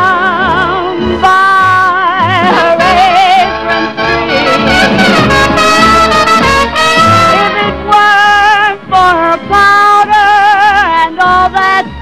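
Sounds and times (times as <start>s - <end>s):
woman singing with vibrato: 0.0s - 4.0s, 7.1s - 12.0s
jazz band accompaniment: 0.0s - 11.8s.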